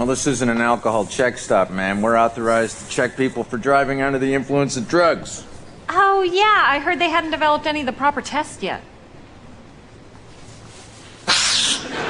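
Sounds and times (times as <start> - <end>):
man sniffing: 11.2 - 12.0.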